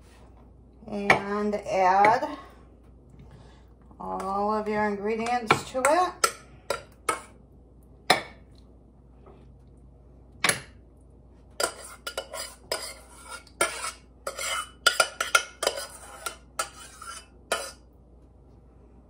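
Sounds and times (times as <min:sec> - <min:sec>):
utensil scraping a pan: 0:11.6 - 0:17.9.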